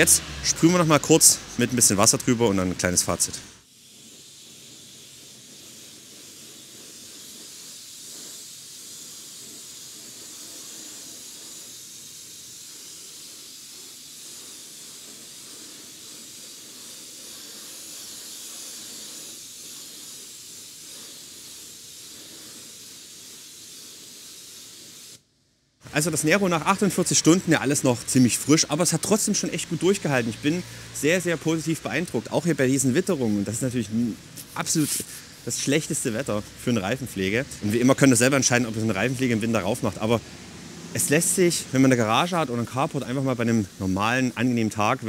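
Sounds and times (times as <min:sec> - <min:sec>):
pressure washer spraying water: 0:00.0 - 0:25.2, 0:25.8 - 0:45.0.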